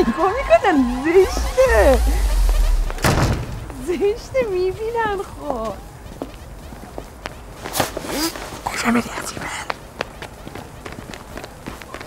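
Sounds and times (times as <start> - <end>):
footsteps on stone steps: 0.0 - 12.0.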